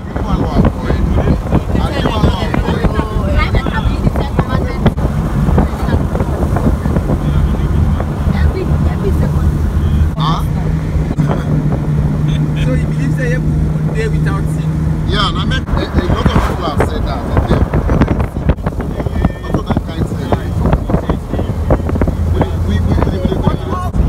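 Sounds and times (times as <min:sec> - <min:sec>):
car engine and road noise: 0:00.0 - 0:24.0.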